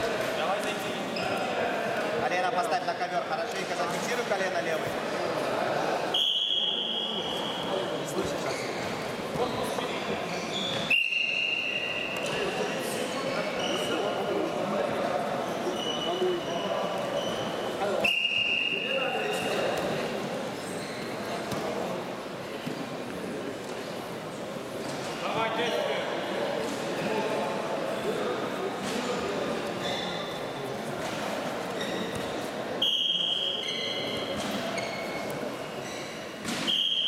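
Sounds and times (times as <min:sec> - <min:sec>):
chatter and calls in sports hall: 0:00.0 - 0:37.0
referee's whistle blasts: 0:06.1 - 0:07.4, 0:10.7 - 0:12.2, 0:18.0 - 0:19.0, 0:32.8 - 0:34.2, 0:36.6 - 0:37.0.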